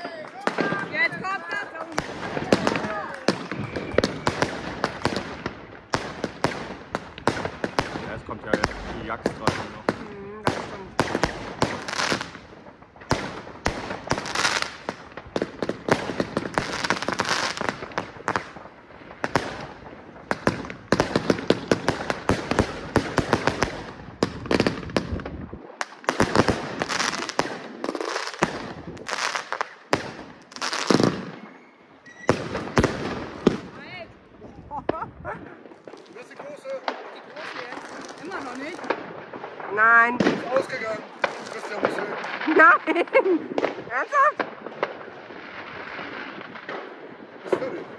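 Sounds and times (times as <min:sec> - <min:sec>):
fireworks bangs: 0:00.0 - 0:47.9.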